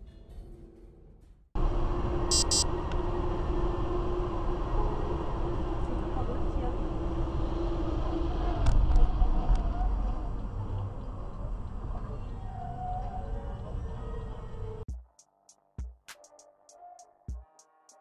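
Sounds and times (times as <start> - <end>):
constant hum: 1.6 - 12.4
tyres and engine rumble: 1.6 - 14.9
short high beeps: 2.3 - 2.6.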